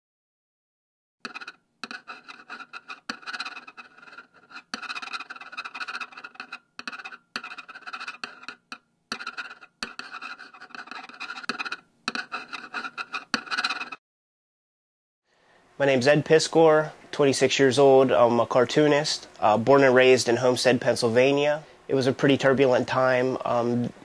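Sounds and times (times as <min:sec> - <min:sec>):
pen scratching across paper: 0:01.3 - 0:14.0.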